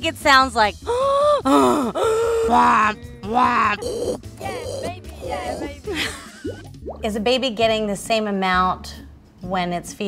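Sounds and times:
woman making drawn-out vocal sounds: 0.9 - 6.1.

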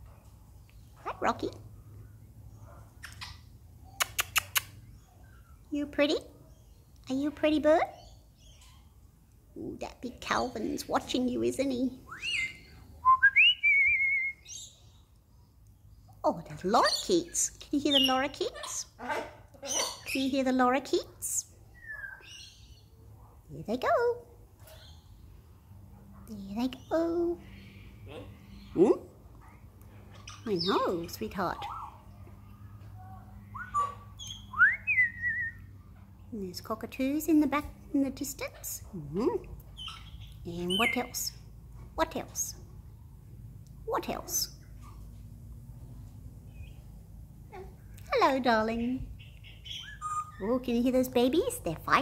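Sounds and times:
parrot whistling: 12.1 - 14.4, 33.5 - 35.6, 49.8 - 50.4.

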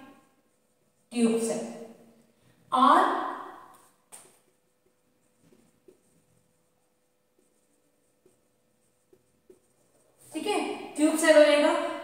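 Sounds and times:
marker writing on whiteboard: 0.0 - 2.0, 2.8 - 12.0
faint steady hum: 0.0 - 12.0.

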